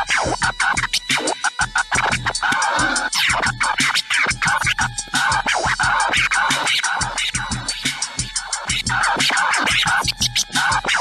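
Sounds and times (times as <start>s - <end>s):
fast drum beat: 0.0s - 11.0s
turntable scratching: 0.0s - 11.0s.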